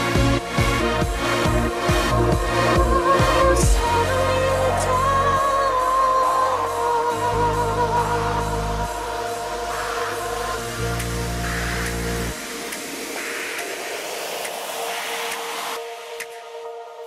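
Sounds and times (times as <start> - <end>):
trance music: 0.0 - 17.0.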